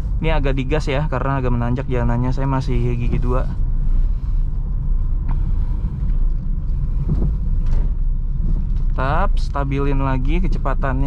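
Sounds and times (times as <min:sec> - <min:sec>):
car engine and road drone: 0:00.0 - 0:11.0.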